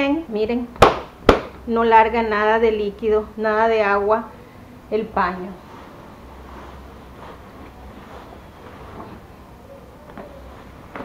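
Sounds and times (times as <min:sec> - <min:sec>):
steady low hum: 0:00.0 - 0:11.0
cloth rubbing on sofa: 0:05.3 - 0:09.7.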